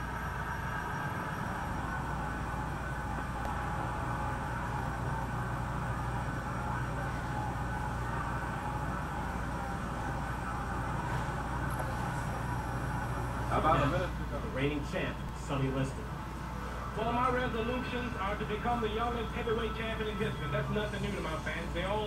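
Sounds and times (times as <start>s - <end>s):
low room hum and hiss: 0.0s - 22.0s.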